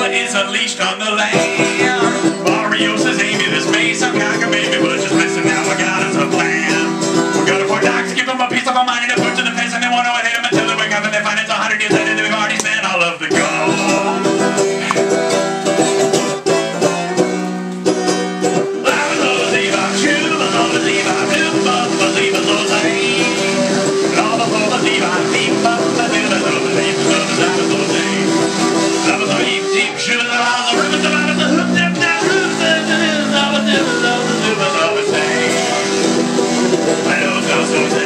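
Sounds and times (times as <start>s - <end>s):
banjo playing: 0.0s - 38.0s.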